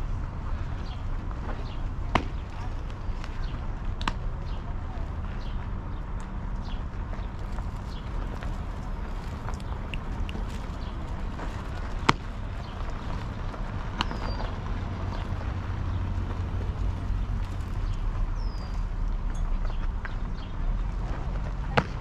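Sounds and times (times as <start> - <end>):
steady low rumble: 0.0 - 22.0.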